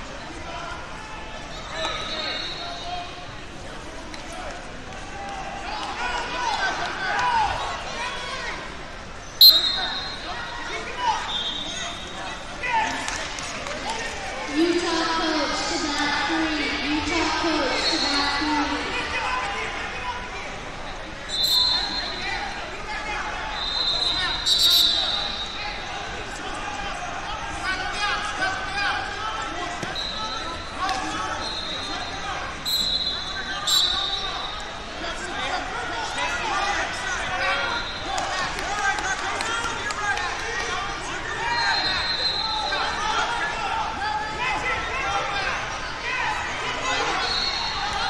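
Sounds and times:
voices and coaches shouting: 0.2s - 48.0s
referee whistle blasts: 1.8s - 2.8s, 9.4s - 10.4s, 11.2s - 12.1s, 21.3s - 22.2s, 23.6s - 25.6s, 29.8s - 30.5s, 31.4s - 34.7s, 41.6s - 42.8s, 47.0s - 47.9s.

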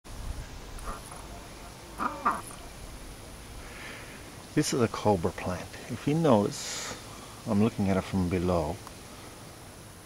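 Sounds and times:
short falling bird calls: 0.7s - 2.7s.

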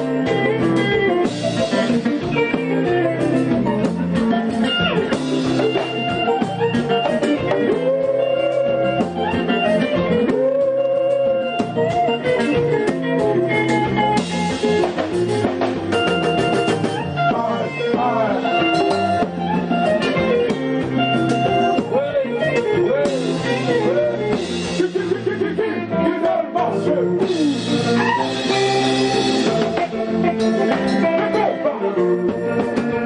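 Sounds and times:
congas: 0.0s - 33.0s
drums: 0.0s - 33.0s
electric guitar lead: 0.0s - 33.0s
rhythm guitar: 0.0s - 33.0s.

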